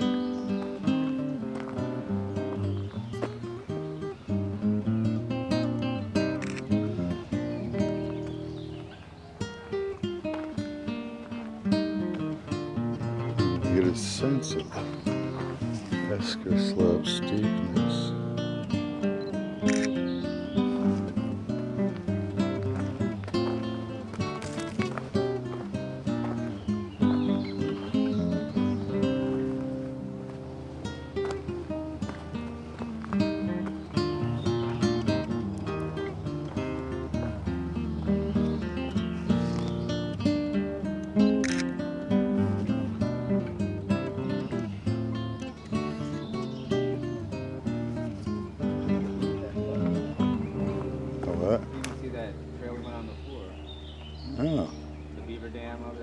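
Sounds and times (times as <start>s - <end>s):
acoustic guitar plucked notes: 0.0s - 55.2s.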